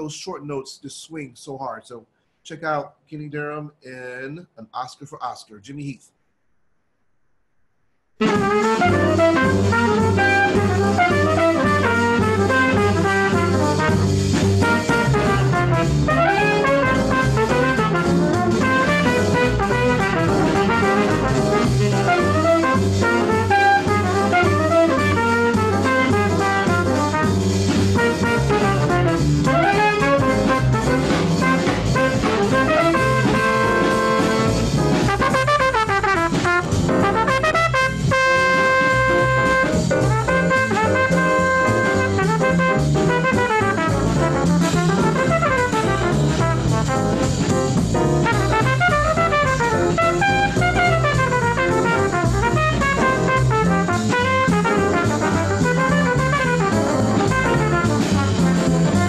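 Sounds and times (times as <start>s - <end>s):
saxophone: 8.2s - 59.0s
small group jazz blues: 8.2s - 59.0s
trumpet: 8.2s - 59.0s.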